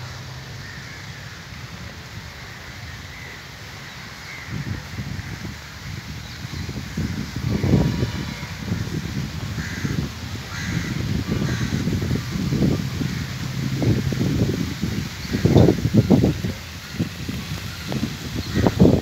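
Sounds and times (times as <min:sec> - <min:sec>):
wind buffeting microphone: 0:03.8 - 0:19.0
crows cawing: 0:09.6 - 0:12.0.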